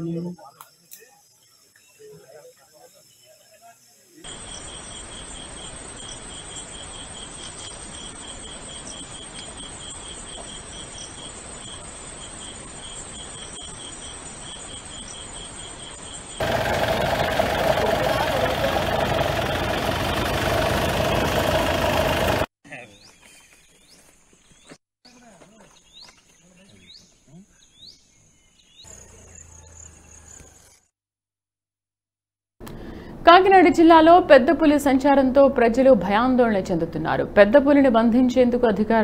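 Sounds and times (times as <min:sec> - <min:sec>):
crickets chirping: 0:00.0 - 0:19.5
loud steady rushing noise: 0:16.4 - 0:22.5.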